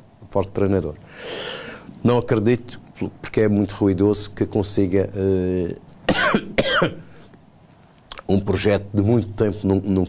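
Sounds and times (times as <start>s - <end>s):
man coughing: 6.1s - 7.1s.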